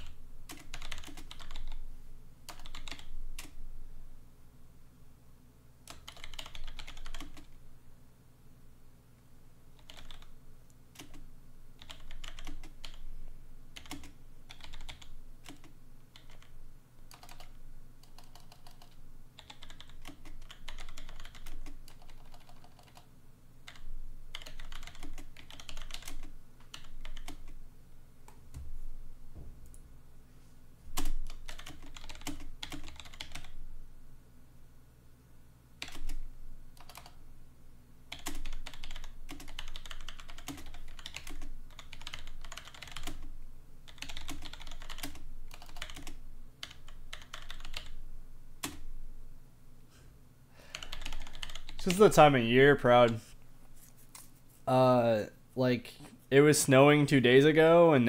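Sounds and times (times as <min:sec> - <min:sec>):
computer keyboard typing: 0:00.0 - 0:01.8, 0:02.5 - 0:03.6, 0:05.9 - 0:07.6, 0:09.8 - 0:10.4, 0:11.0 - 0:11.2, 0:11.8 - 0:13.1, 0:13.7 - 0:27.6, 0:31.0 - 0:33.6, 0:35.8 - 0:37.2, 0:38.1 - 0:43.3, 0:43.9 - 0:48.0, 0:48.6 - 0:48.9, 0:50.7 - 0:52.3.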